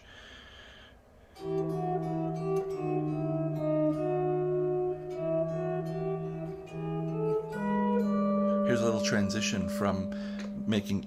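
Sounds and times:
electric guitar melody: 1.4 - 11.0.

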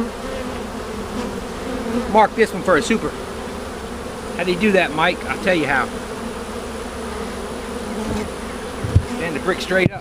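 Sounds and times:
bees buzzing: 0.0 - 10.0
short dull thump: 8.0 - 9.2.

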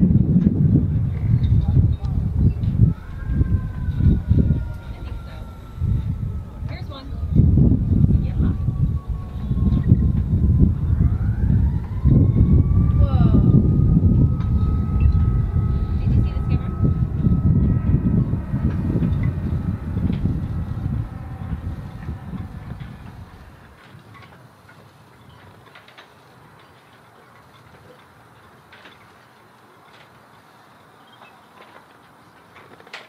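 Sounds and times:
distant siren wailing: 0.0 - 31.9
low uneven rumble: 0.0 - 32.9.

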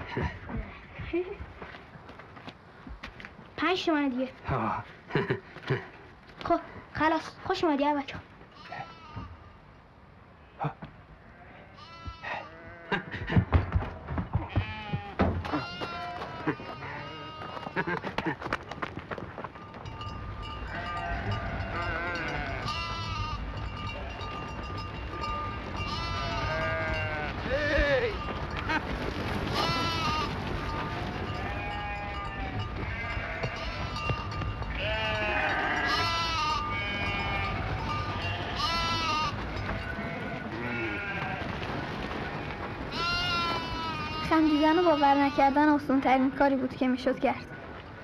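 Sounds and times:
sheep and goats bleating: 8.5 - 9.6, 10.6 - 13.2, 14.4 - 18.1, 20.0 - 46.4.

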